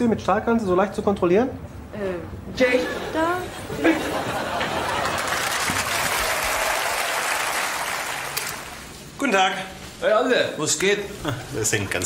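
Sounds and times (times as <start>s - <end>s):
audience applauding: 4.2s - 8.9s.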